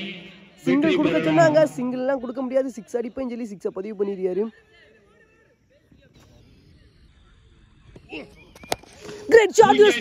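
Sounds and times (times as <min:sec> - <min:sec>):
distant indistinct voices: 0:00.0 - 0:10.0.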